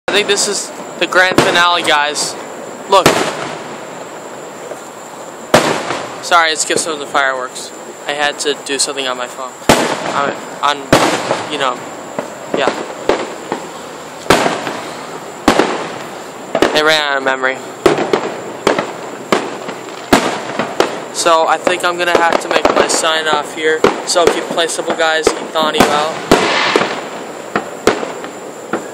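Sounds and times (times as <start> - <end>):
steady background noise: 0.1 - 28.9
firework boom with echo: 0.2 - 3.8, 5.5 - 6.9, 9.6 - 13.7, 14.3 - 17.1, 17.8 - 28.9.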